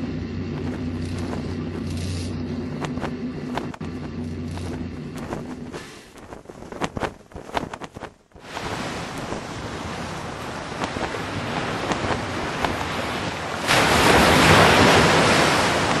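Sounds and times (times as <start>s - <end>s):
sea water rushing: 8.4s - 16.0s.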